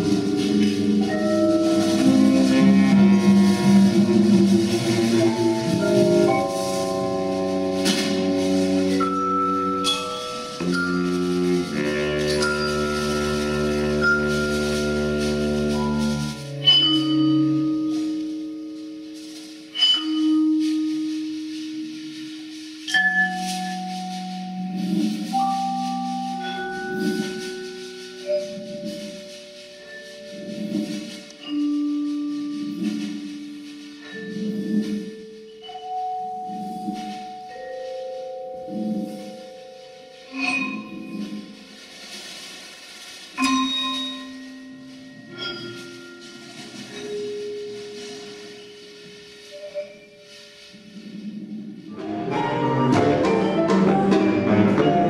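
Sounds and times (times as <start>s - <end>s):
long held instrumental note: 0.0s - 16.6s
slow ensemble music: 0.0s - 55.0s.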